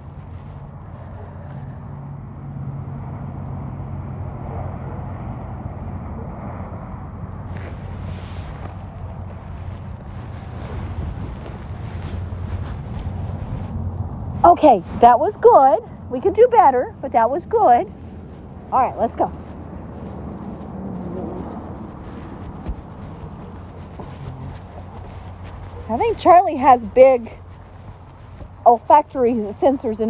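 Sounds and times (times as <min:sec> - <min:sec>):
rustling: 0:00.0 - 0:01.9, 0:07.4 - 0:15.7, 0:17.6 - 0:30.0
low outdoor rumble: 0:00.0 - 0:30.0.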